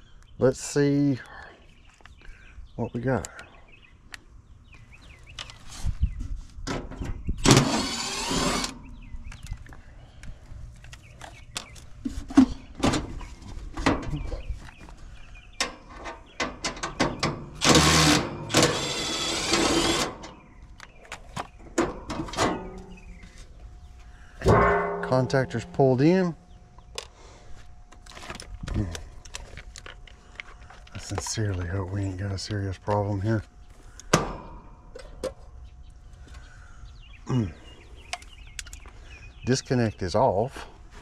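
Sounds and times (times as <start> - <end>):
impact driver running: 7.4 - 8.8, 17.6 - 20.4.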